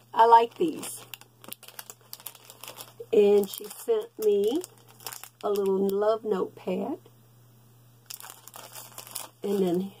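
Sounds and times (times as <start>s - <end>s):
plastic packaging crinkling: 0.0s - 6.1s, 8.0s - 10.0s.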